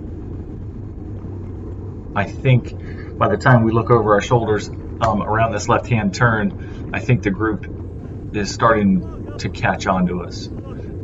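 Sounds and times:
bicycle tyre and road noise: 0.0s - 11.0s
low wind rumble: 0.0s - 11.0s.

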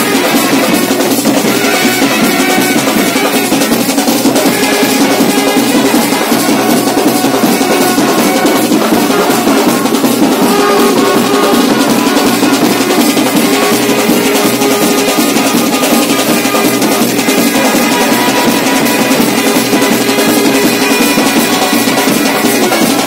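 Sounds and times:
bass drum and side drum: 0.0s - 23.0s
brass band playing: 0.0s - 23.0s.

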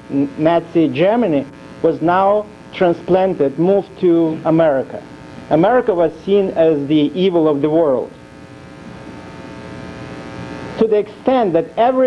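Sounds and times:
background hiss: 0.0s - 12.0s
electrical buzz: 0.0s - 12.0s.

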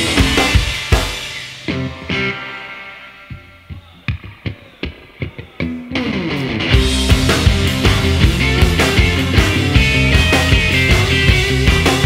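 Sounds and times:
electric guitar and bass riff: 0.0s - 12.0s.

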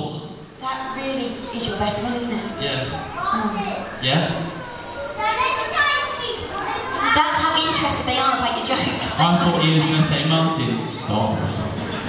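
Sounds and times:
children chattering and calling out: 0.4s - 12.0s.

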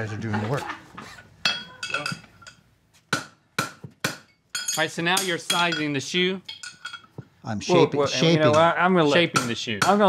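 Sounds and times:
hammer striking horseshoe on anvil: 3.1s - 7.0s, 8.5s - 10.0s.

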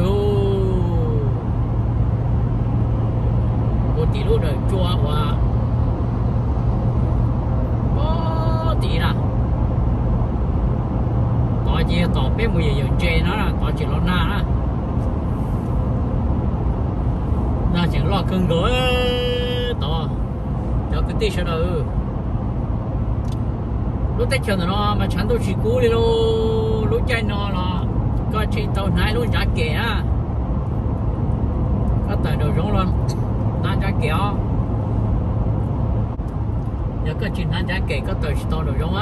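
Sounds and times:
car road noise drone: 0.0s - 39.0s.

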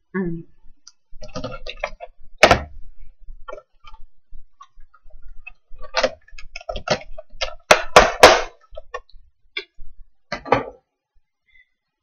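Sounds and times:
person chewing food: 3.2s - 7.7s.

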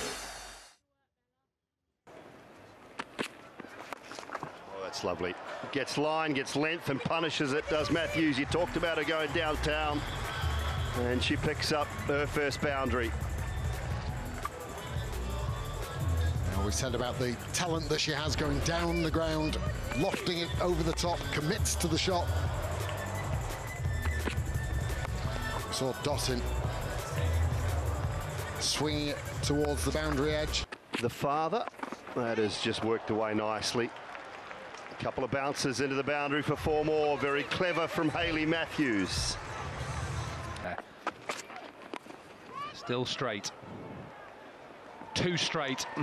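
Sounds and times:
background ground noise: 2.1s - 9.1s, 29.5s - 46.0s
music with steady bass line: 12.7s - 20.0s, 20.6s - 30.6s.

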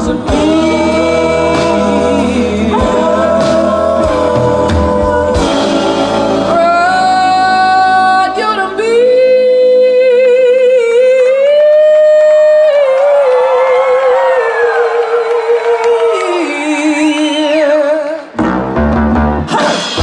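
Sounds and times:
live band music: 0.0s - 11.0s, 16.1s - 20.0s
woman singing with vibrato: 0.0s - 18.3s.

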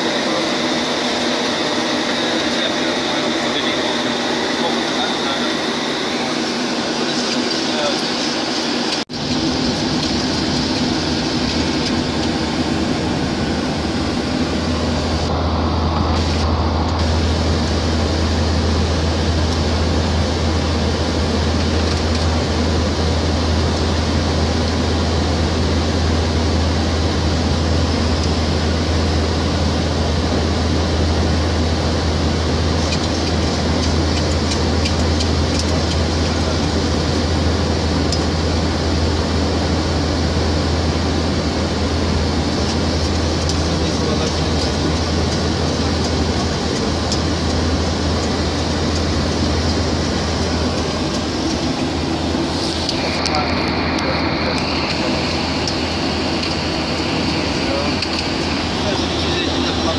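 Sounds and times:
airflow and engine rush: 0.0s - 59.9s.

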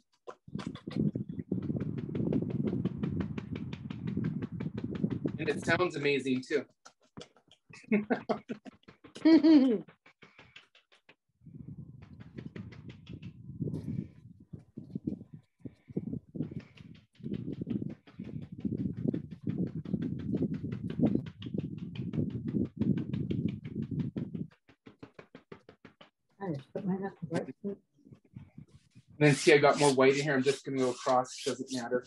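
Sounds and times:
brush tapping on canvas: 0.3s - 15.2s, 16.2s - 26.9s.

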